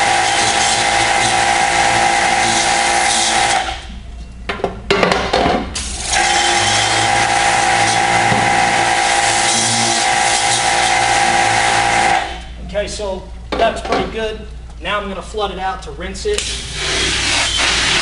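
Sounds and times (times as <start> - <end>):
motor hum: 5.9 - 12.6
pressure washer spraying water: 16.4 - 18.0.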